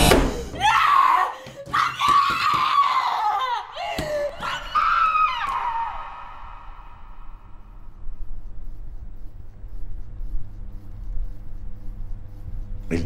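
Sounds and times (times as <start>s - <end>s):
woman screaming: 0.6s - 7.3s.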